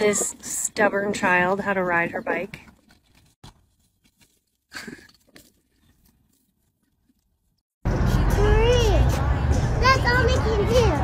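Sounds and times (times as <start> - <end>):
music with a voice: 7.9 - 11.0.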